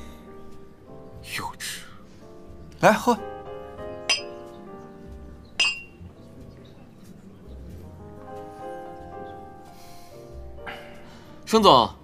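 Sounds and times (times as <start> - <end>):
drinking glasses clinking: 4.1 - 4.4, 5.6 - 6.0.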